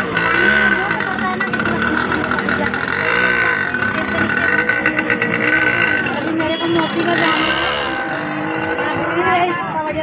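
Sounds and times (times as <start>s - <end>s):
people talking: 0.0s - 10.0s
steady background noise: 0.0s - 10.0s.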